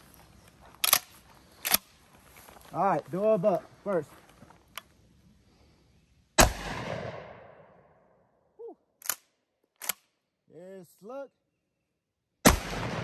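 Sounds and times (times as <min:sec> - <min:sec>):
shotgun blast with echo: 0:06.4 - 0:07.6, 0:12.4 - 0:13.0.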